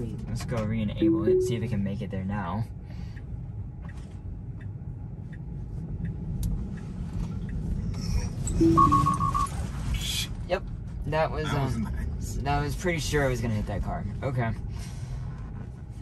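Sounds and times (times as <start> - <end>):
road and tyre noise: 0.0 - 16.0
car alert beeps: 1.0 - 1.8, 8.6 - 9.5.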